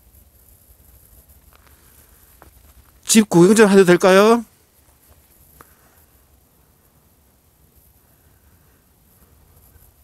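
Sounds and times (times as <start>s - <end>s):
low steady rumble: 0.0s - 10.0s
faint footsteps: 1.4s - 3.1s, 4.5s - 6.1s.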